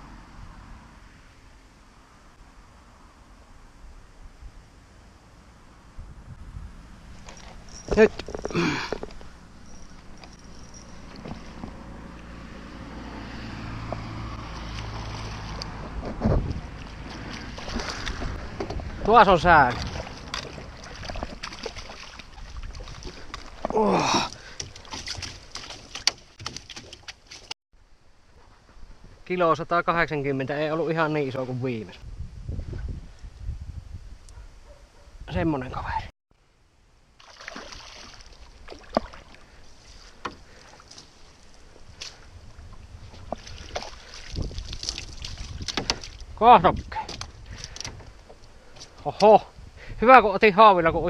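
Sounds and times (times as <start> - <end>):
wind rumbling on microphone: 0.0 - 25.8, 31.9 - 36.1, 38.3 - 51.0
water splashing: 7.0 - 27.6, 37.2 - 49.3
person exclaiming: 8.0 - 9.0, 23.7 - 24.3
net and fish knocking on boat: 43.2 - 46.2.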